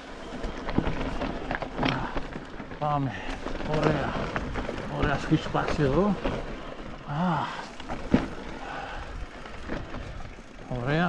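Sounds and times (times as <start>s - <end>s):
bike tyres rumbling on rocks: 0.0s - 11.0s.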